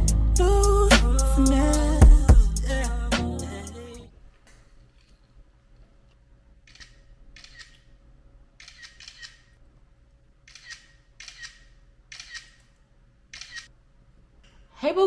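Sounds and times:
smartphone camera shutter: 0:06.7 - 0:07.8, 0:08.6 - 0:09.6, 0:10.5 - 0:12.6, 0:13.3 - 0:13.7.

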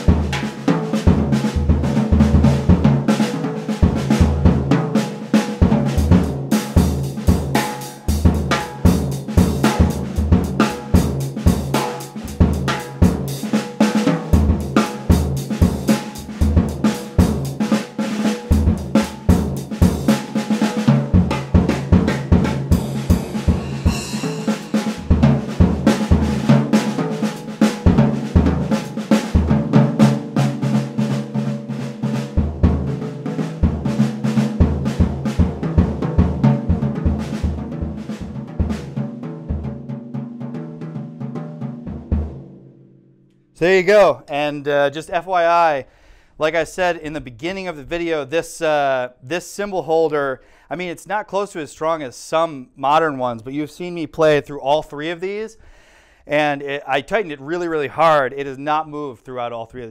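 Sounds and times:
jazz drum kit playing: 0:00.0 - 0:42.7
cymbal hits: 0:22.2 - 0:27.8.

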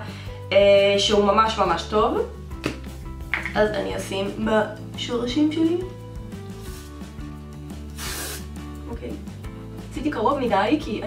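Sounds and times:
background music: 0:00.0 - 0:11.0
aerosol spray hiss: 0:06.6 - 0:07.0, 0:07.8 - 0:08.6.

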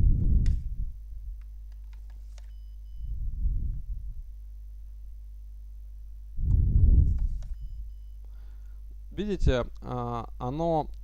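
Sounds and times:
low muffled rumble: 0:00.0 - 0:01.5, 0:02.8 - 0:08.2
low electrical hum: 0:00.0 - 0:11.0
short high beeps: 0:07.5 - 0:08.2.

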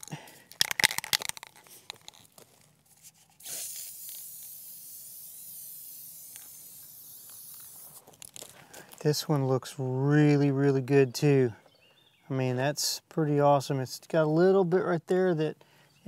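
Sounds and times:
aerosol spray hiss: 0:03.4 - 0:08.0
aerosol can rattling when shaken: 0:03.4 - 0:08.5.

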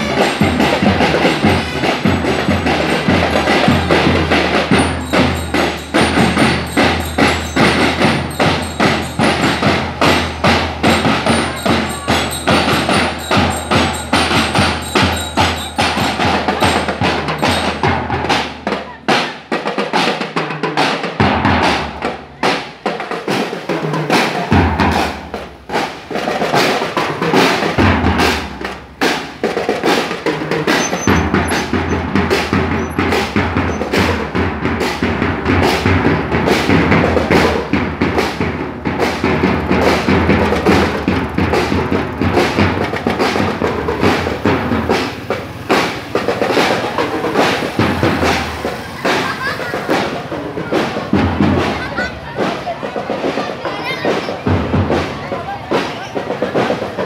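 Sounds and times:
bell lyres chiming: 0:00.0 - 0:18.0
marching drums: 0:00.0 - 0:57.0.

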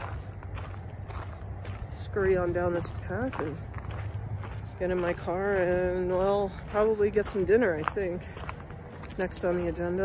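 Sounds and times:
footsteps on a trail: 0:00.0 - 0:10.0.

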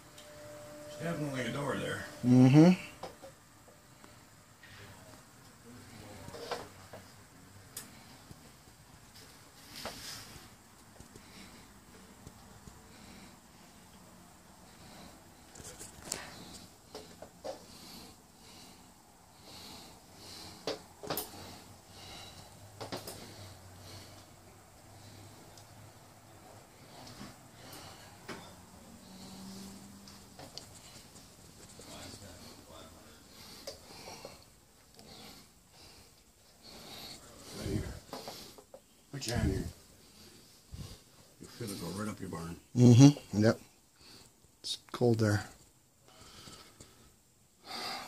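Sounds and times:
breathy sniffs: 0:26.5 - 0:38.7.

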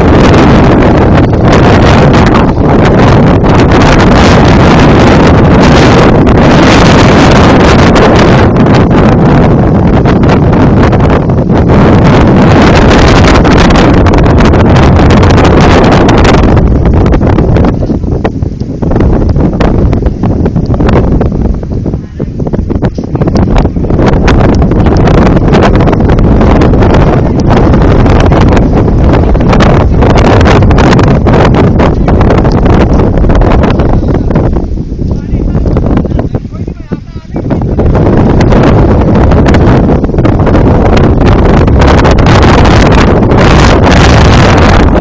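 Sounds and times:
heavy wind buffeting microphone: 0:00.0 - 0:45.0.

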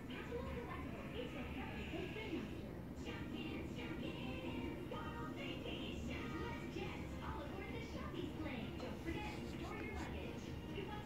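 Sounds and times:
background music from a speaker: 0:03.6 - 0:11.0
speech from a speaker: 0:06.4 - 0:11.0.

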